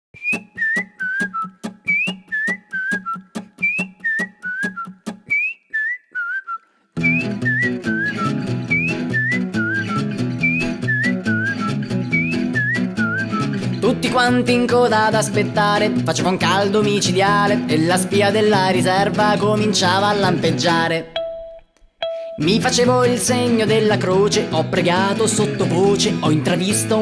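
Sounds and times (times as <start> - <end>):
whistled melody: 0.2 - 13.9.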